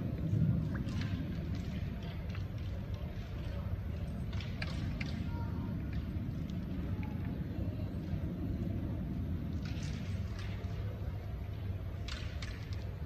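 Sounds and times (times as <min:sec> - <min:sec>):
hall background rumble: 0:00.0 - 0:13.0.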